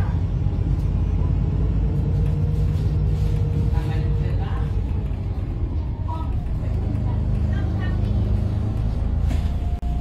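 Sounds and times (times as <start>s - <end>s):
faint passenger voices: 0.0s - 9.8s
bus engine and road rumble: 0.0s - 10.0s.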